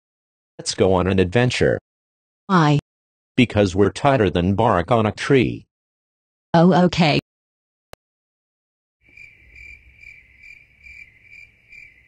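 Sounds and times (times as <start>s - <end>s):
crickets chirping: 9.0s - 12.0s.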